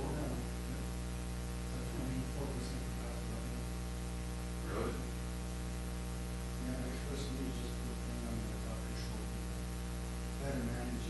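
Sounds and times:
electrical mains hum: 0.0 - 11.0
faint hiss: 0.0 - 11.0.

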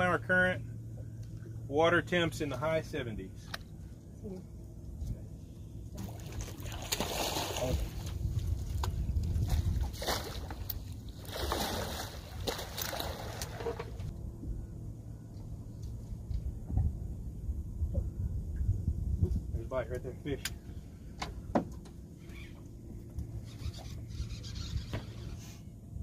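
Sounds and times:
steady low rumble: 0.0 - 26.0
water splashing from thrashing fish: 6.0 - 8.2, 9.5 - 13.8.

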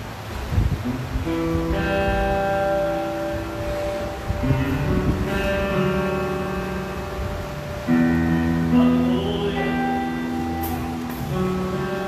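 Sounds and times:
band playing held chords: 0.8 - 12.0.

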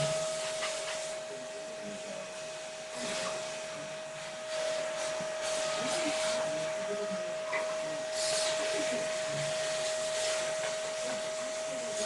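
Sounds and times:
vacuum cleaner running: 0.0 - 12.0.

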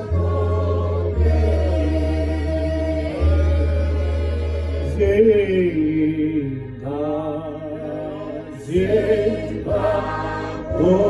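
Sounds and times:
voices singing a chant-like hymn: 0.0 - 11.0.

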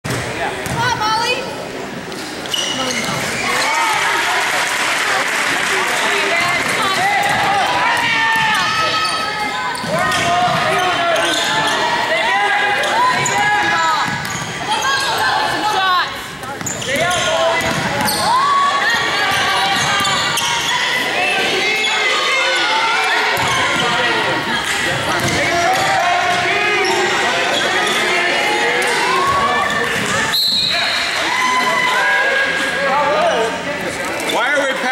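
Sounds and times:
crowd voices echoing: 0.0 - 34.9.

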